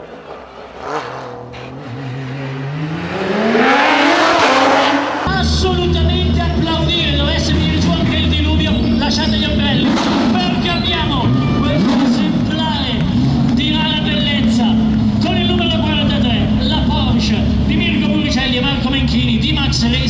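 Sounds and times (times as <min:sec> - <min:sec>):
car engine idling: 0:00.0 - 0:20.0
voices talking: 0:05.2 - 0:20.0.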